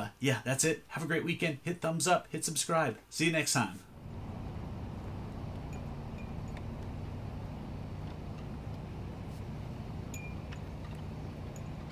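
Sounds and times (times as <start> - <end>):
traffic: 4.0 - 11.9
wind rumble: 4.0 - 11.9.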